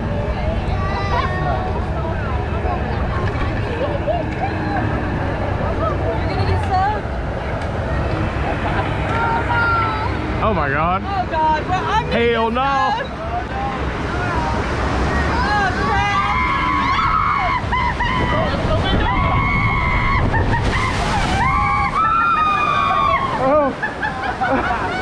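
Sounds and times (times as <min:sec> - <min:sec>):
rushing whitewater and spray: 0:13.5 - 0:25.0
people screaming: 0:15.3 - 0:25.0.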